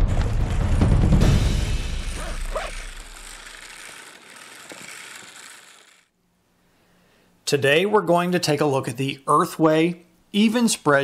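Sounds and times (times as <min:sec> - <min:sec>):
hand-cranked spreader gearbox whirring: 0:01.8 - 0:06.1.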